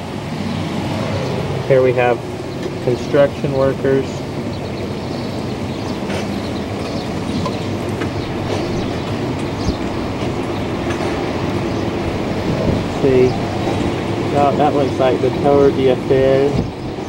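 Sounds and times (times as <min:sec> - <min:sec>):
city street and construction noise: 0:00.0 - 0:17.0.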